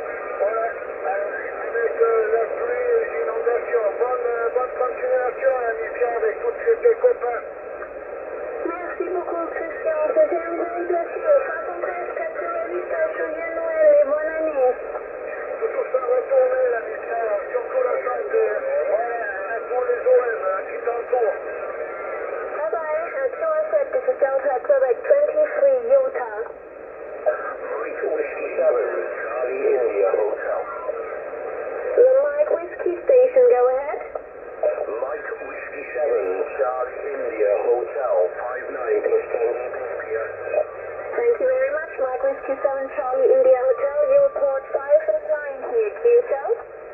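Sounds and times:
radio band hiss: 0.0s - 46.9s
radio voice talk: 0.0s - 46.9s.

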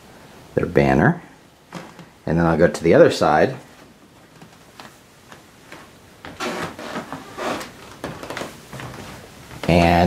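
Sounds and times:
soft rustling and shuffling: 1.3s - 10.0s.

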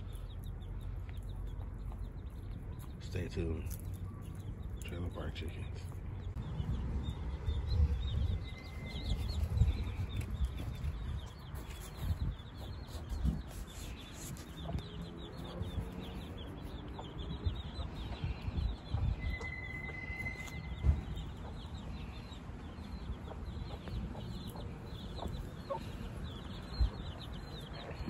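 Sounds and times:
chicks peeping: 0.0s - 28.0s
hen clucking: 22.8s - 28.0s.

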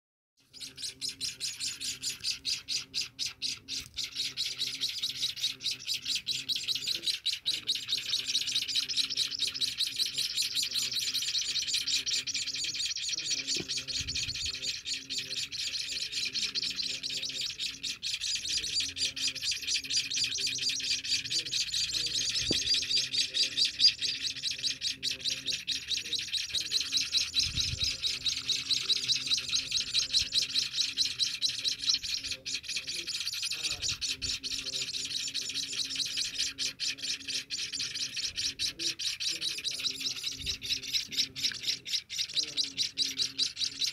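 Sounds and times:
nestlings chirping: 0.4s - 43.9s.

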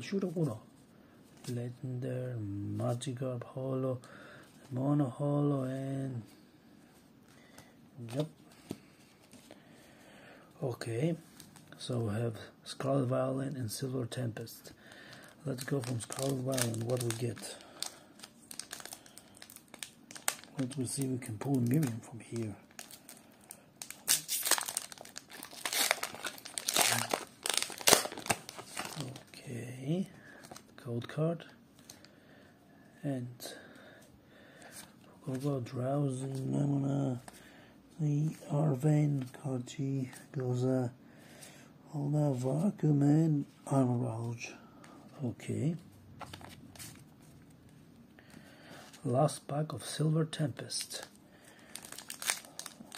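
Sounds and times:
foil wrapper crinkling: 14.9s - 29.4s, 50.8s - 52.9s.

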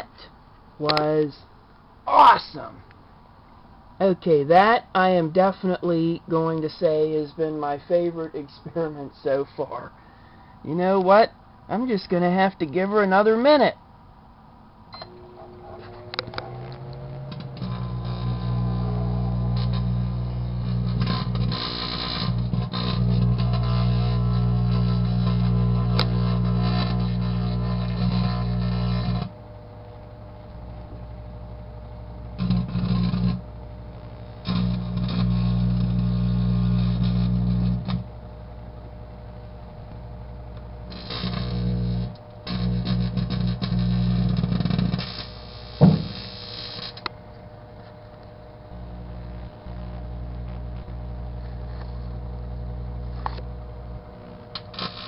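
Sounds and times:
microwave oven hum: 13.1s - 55.0s
crackling electrical buzz: 14.6s - 55.0s
sharp pop: 45.8s - 46.2s.

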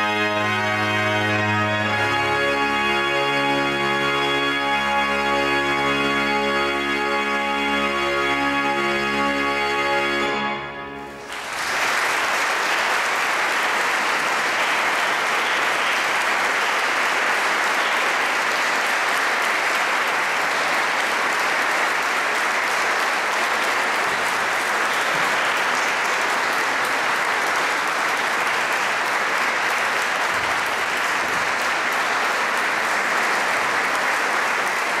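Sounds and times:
audience applauding: 11.1s - 35.0s.

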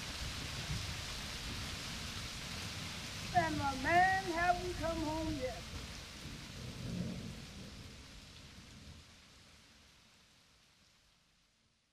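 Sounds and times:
noisy wash like rain: 0.0s - 11.9s.

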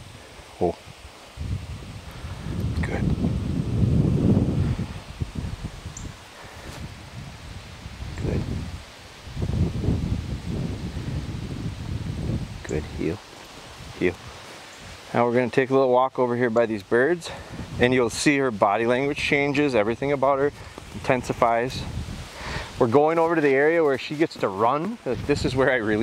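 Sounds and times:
wind buffeting microphone: 0.0s - 15.4s, 16.0s - 26.0s.

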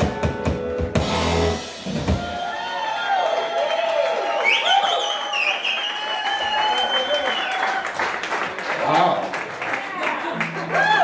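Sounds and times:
audience applauding and cheering: 1.9s - 11.0s
high whistle: 4.3s - 7.7s.

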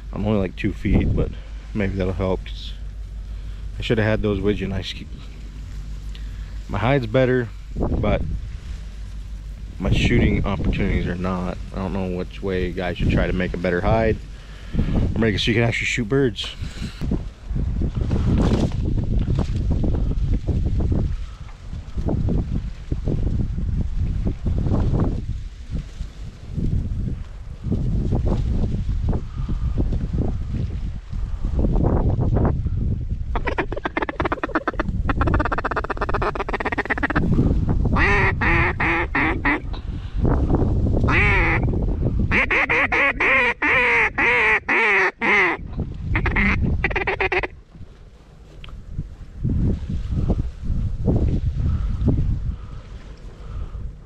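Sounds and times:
wind buffeting microphone: 0.0s - 44.7s, 45.6s - 54.0s
ducks quacking: 33.4s - 37.3s, 38.0s - 39.7s, 41.1s - 41.7s, 42.3s - 47.6s.

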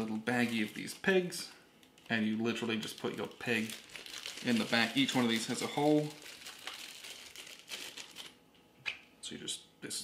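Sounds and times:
plastic bag crinkling: 0.0s - 1.2s, 1.8s - 8.4s.

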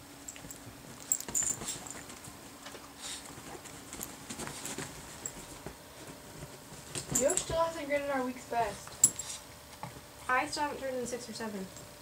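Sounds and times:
animals scuffling on bedding: 0.3s - 10.6s.

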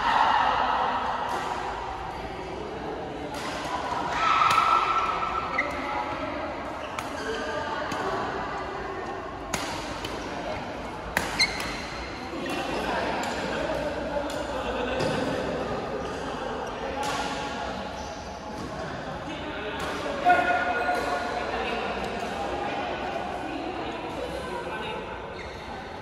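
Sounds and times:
murmur of voices: 0.0s - 26.0s
racket hitting shuttlecock: 3.3s - 5.9s, 9.5s - 13.4s.

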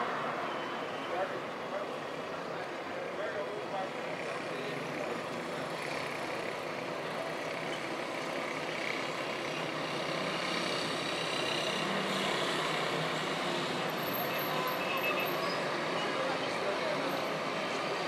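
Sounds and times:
road traffic hum: 0.0s - 18.0s.

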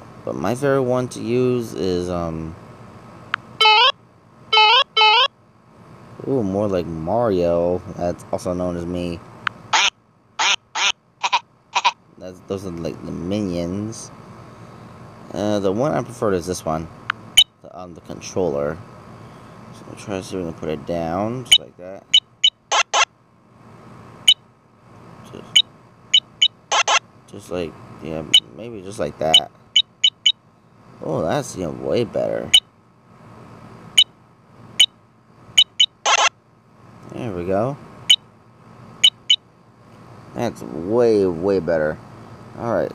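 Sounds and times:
squeaky cartoon key-press sounds: 3.6s - 3.9s, 4.6s - 5.3s, 9.8s - 12.0s, 21.5s - 23.0s, 26.2s - 27.0s, 29.3s - 30.4s, 35.6s - 36.3s, 39.0s - 39.4s
short electronic clicks: 21.5s - 23.1s, 25.5s - 27.0s, 35.6s - 36.3s
buzzy electronic beep: 26.2s - 27.0s, 35.6s - 36.3s.

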